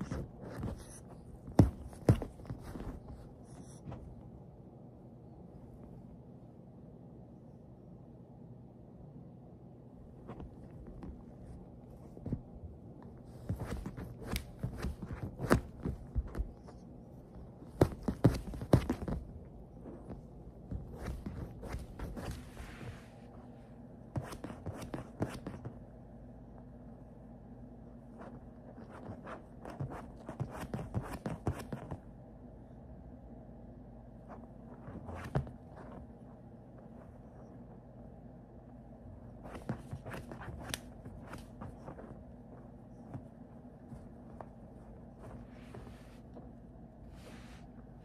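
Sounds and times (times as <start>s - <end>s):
scuffing rustles: 0.0s - 4.2s, 10.2s - 23.2s, 34.2s - 37.6s, 39.4s - 47.9s.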